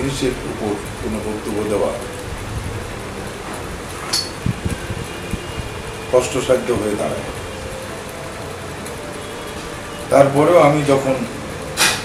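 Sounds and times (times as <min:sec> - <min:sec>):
short high hiss: 0:11.8 - 0:12.0.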